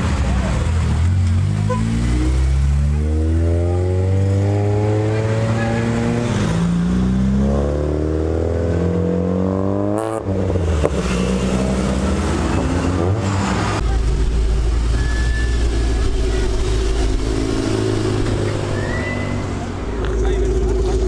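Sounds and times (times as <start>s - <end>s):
car engines accelerating hard: 0.0s - 21.0s.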